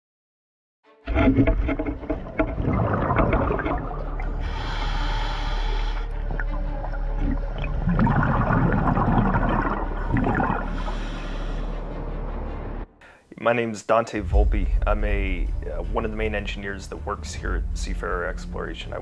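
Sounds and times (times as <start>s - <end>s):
exhaled bubbles rushing: 1.1s - 5.0s, 6.1s - 11.6s
diver breathing through regulator: 4.2s - 6.6s, 8.2s - 12.1s.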